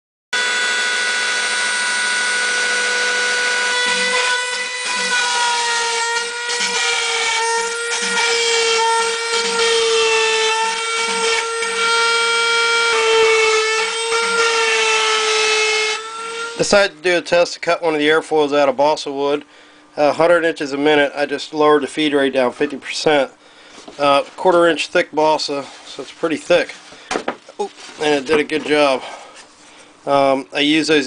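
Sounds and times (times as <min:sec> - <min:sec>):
cnc router spindle whine: 0:00.4 - 0:16.9
router bit cutting wood: 0:00.4 - 0:17.0.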